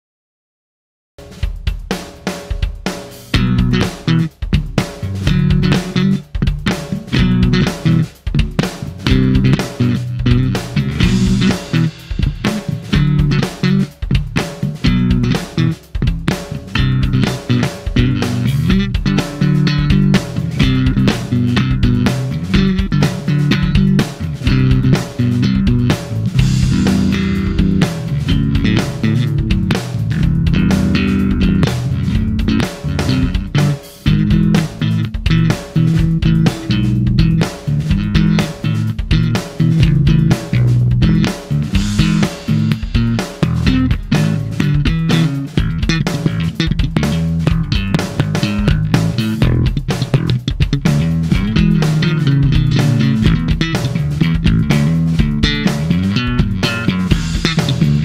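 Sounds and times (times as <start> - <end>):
drum kit groove: 1.2 - 58.0
electric bass: 3.0 - 58.0.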